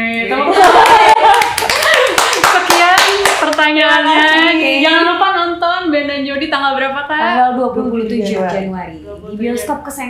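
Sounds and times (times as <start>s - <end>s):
people clapping hands: 0.5s - 3.7s.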